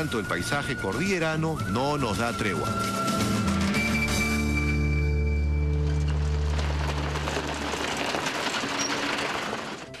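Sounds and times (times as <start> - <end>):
background music with low notes: 0.0 - 7.0
truck tyres on dirt road: 2.6 - 10.0.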